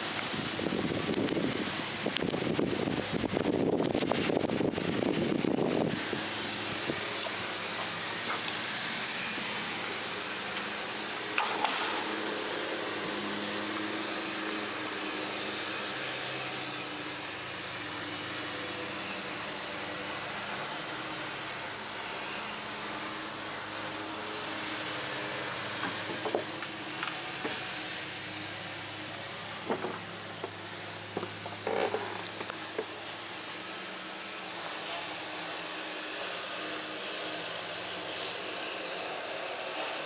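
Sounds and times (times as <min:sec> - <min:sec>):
machine hum with hiss: 0:00.0 - 0:40.0.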